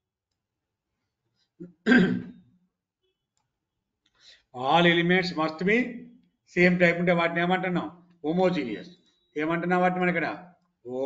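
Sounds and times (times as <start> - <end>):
man clearing his throat: 1.6 - 2.4.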